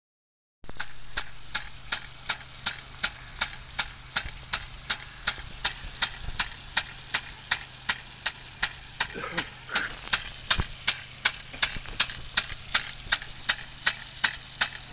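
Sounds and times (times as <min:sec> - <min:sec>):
hiss of water spray: 0:00.7 - 0:14.9
sprinkler arm clacking: 0:00.7 - 0:14.9.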